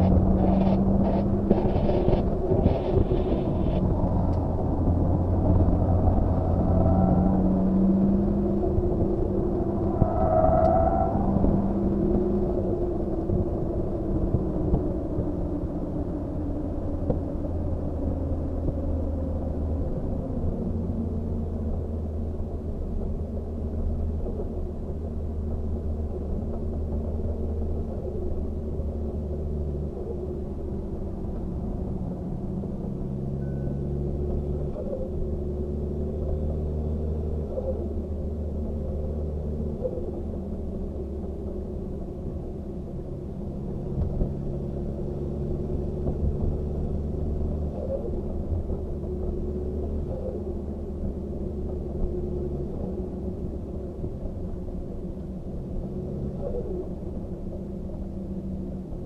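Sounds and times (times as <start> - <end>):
car engine and road noise in cabin: 0.0 - 59.0.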